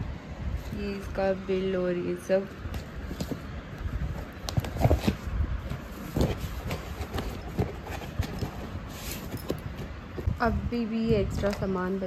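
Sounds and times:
light cardboard rustling: 2.4 - 10.4
hollow knocks on cardboard box: 4.3 - 8.7.

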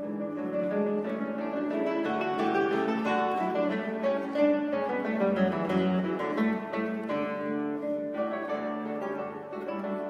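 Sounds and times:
classical guitars playing: 0.0 - 10.0.

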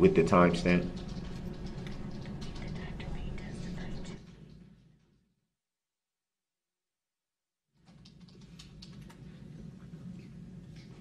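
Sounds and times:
steady low hum: 0.0 - 5.2, 7.9 - 11.0.

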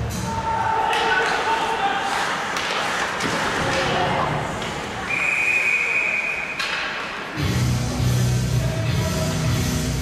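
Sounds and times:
referee whistle long blast: 5.1 - 6.6.

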